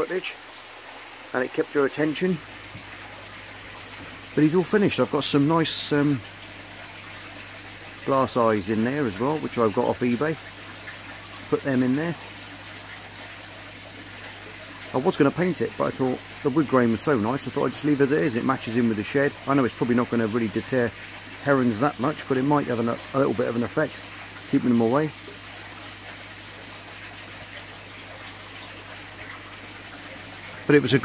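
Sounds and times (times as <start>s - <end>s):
trickle of running water: 0.0s - 31.0s.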